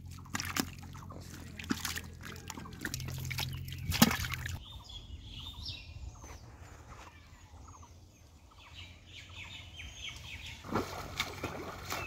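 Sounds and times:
wading through shallow water: 0.0s - 4.7s, 10.4s - 12.0s
small birds chirping: 0.0s - 12.0s.

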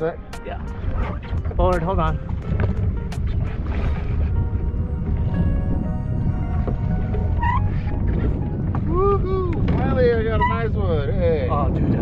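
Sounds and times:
quiet background music: 0.0s - 11.4s
outboard motor rumbling: 0.0s - 12.0s.

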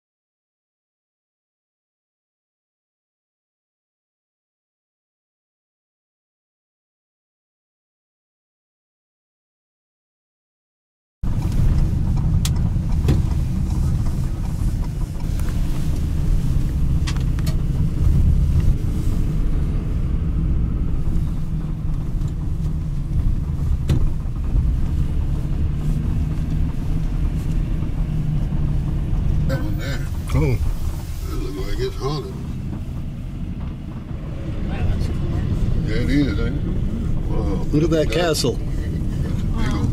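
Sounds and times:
car engine and tyres rumbling: 11.2s - 39.9s.

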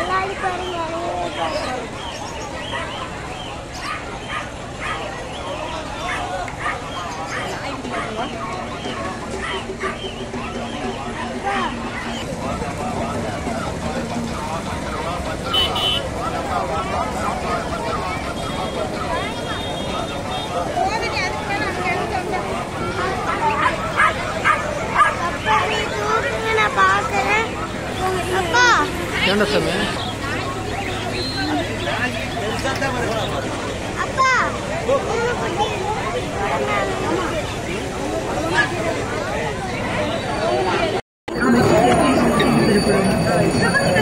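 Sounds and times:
people talking: 0.0s - 44.0s
puppies yipping and whining: 2.0s - 12.2s.

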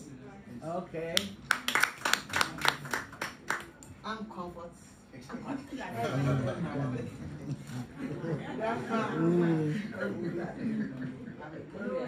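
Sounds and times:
people clapping: 1.2s - 3.9s.

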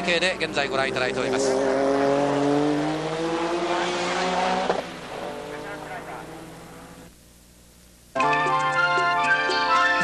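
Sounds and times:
race car engine running hard: 0.0s - 7.1s.

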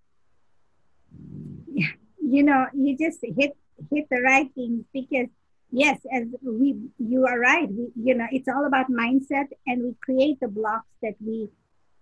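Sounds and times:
woman speaking: 1.5s - 11.5s.

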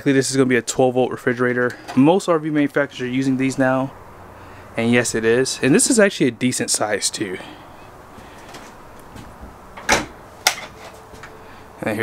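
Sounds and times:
low steady background hum: 0.0s - 12.0s.

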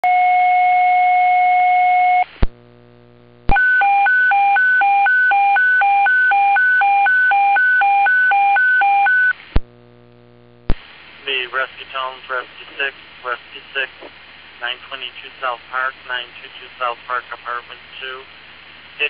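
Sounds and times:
radio hum: 2.3s - 3.6s, 9.3s - 19.0s
radio squelch click: 10.7s - 10.9s, 13.8s - 14.2s.

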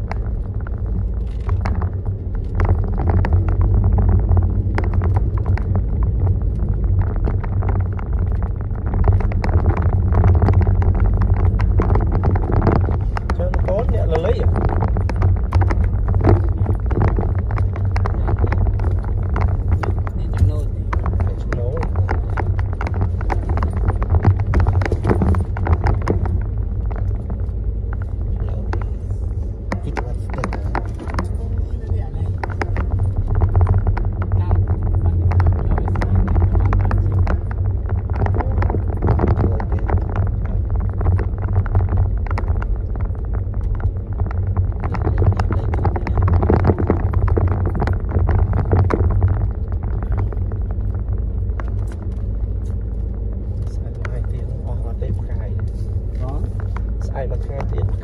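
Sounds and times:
car engine rumble: 0.0s - 58.0s
road noise on unpaved road: 0.0s - 58.0s.

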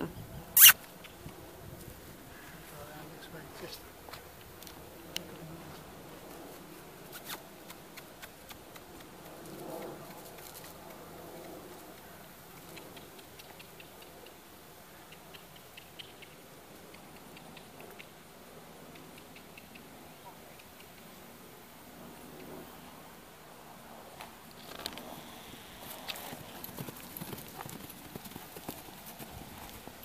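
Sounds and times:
faint steady hiss: 0.4s - 30.0s
small clicks and ticks: 7.6s - 14.4s, 15.1s - 18.2s.

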